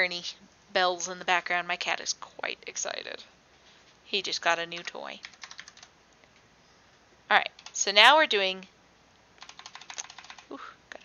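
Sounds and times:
calculator keys clicking: 0:04.8 - 0:05.9, 0:09.4 - 0:10.5.

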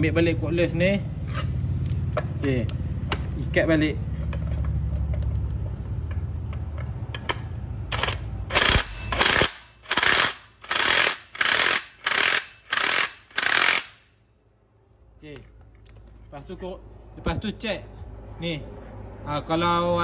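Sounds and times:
impact wrench hammering: 0:06.1 - 0:14.1.

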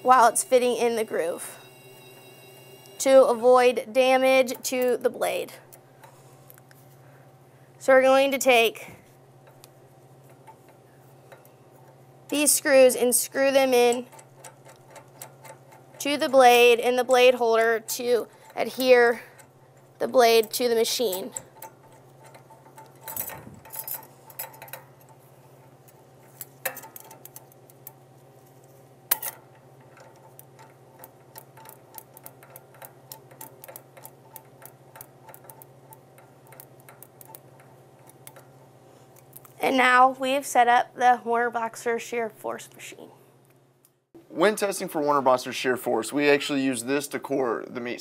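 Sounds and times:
low steady hum: 0:00.0 - 0:48.0
metal clicks and taps: 0:13.9 - 0:16.4, 0:19.3 - 0:28.0, 0:29.1 - 0:38.5.

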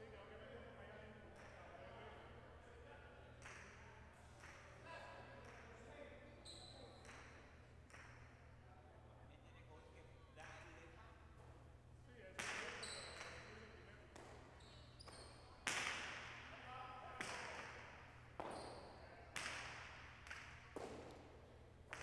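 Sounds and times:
ball cracking against walls: 0:14.1 - 0:16.5, 0:18.4 - 0:21.3.

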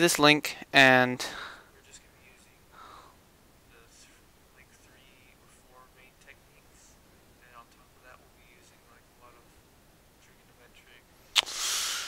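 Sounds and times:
faint whispered speech: 0:03.7 - 0:09.5.

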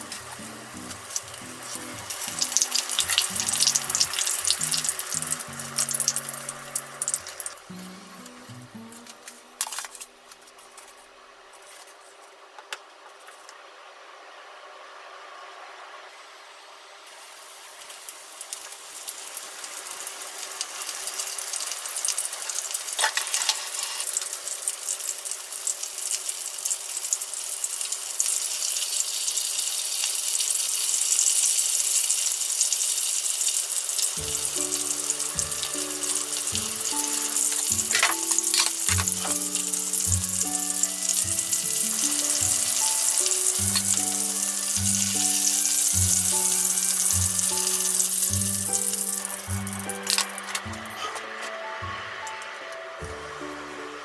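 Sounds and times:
chicken sizzling in hot oil: 0:00.0 - 0:08.6, 0:17.0 - 0:54.0
background music: 0:00.0 - 0:10.0, 0:34.2 - 0:54.0.

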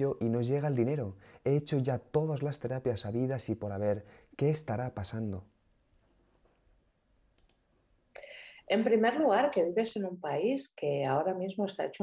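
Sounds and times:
faint clicks: 0:07.3 - 0:07.7.

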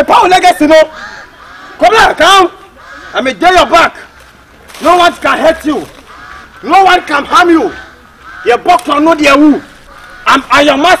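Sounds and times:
man calling out: 0:00.0 - 0:01.0, 0:01.8 - 0:04.1, 0:06.6 - 0:11.0.

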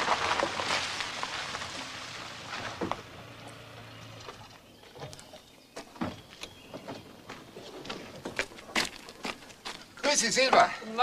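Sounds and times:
faint crunches on gravel: 0:00.0 - 0:03.6, 0:07.3 - 0:10.2
car engine idling: 0:00.9 - 0:04.8.

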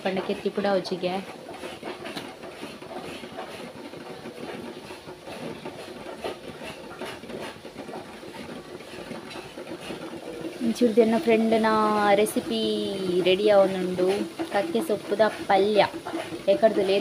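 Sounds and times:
water boiling in a pot: 0:00.0 - 0:17.0.

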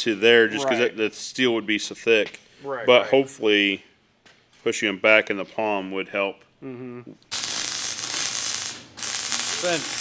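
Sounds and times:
welding arc crackling: 0:07.3 - 0:10.0.

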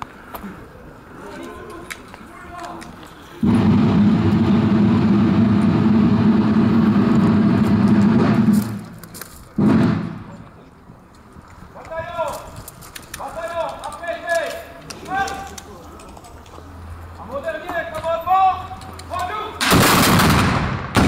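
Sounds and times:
musket volley fire: 0:09.6 - 0:10.3, 0:19.6 - 0:21.0.

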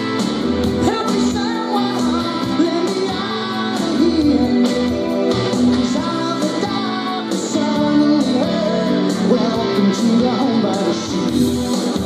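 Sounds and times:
rock band playing: 0:00.0 - 0:12.0
male lead vocal singing: 0:00.7 - 0:12.0.

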